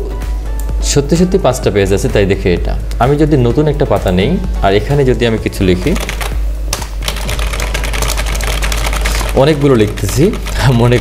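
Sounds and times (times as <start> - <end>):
fast keyboard typing: 5.7 - 11.0.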